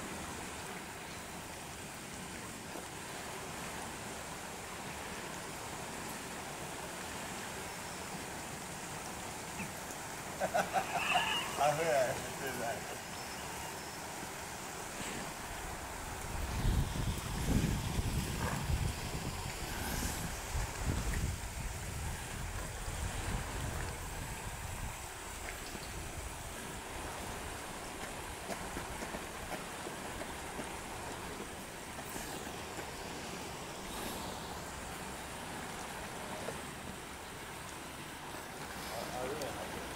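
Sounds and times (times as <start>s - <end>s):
outdoor background hiss: 0.0s - 39.9s
wind buffeting microphone: 15.3s - 32.0s.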